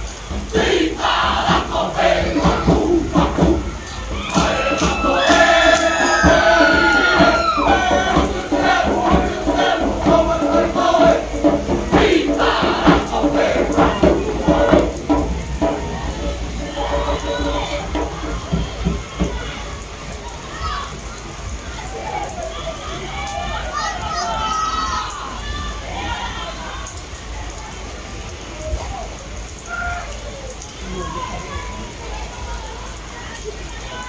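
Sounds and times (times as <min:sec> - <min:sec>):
percussion strikes: 0:00.0 - 0:20.8
group chanting and shouting: 0:00.0 - 0:27.4
long falling cry: 0:00.6 - 0:11.4, 0:12.0 - 0:27.1.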